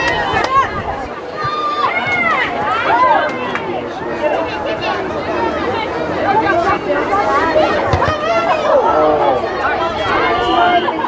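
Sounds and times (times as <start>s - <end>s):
spectators talking and calling out: 0.0s - 11.0s.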